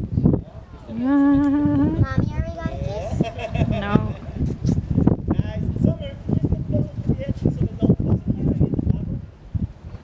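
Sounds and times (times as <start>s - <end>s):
murmur of voice: 0.4s - 4.6s
person humming: 0.9s - 2.0s.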